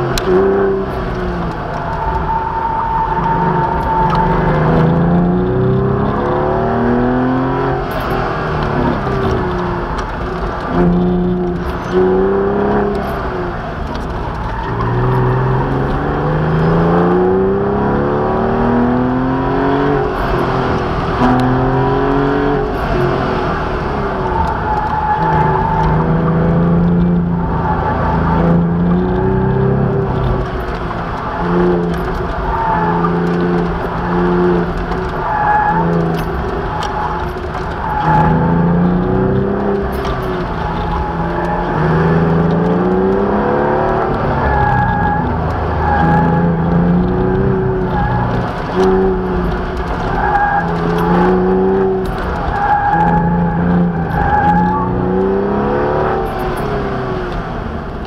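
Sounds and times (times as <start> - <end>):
car engine revving: 0.0 - 58.0.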